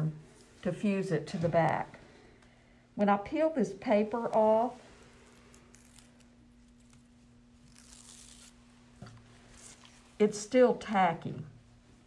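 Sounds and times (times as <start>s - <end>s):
steady low hum: 0.0s - 12.0s
paper backing tearing off tape: 5.2s - 8.6s, 9.5s - 10.0s.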